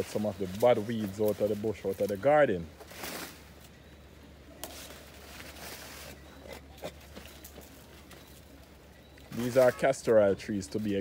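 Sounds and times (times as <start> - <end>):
leafy plants rustling: 0.0 - 11.0.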